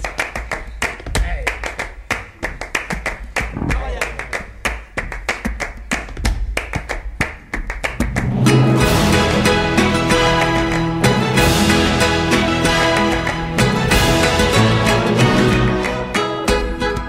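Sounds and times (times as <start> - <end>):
hands clapping: 0.0 - 8.6, 9.2 - 17.0.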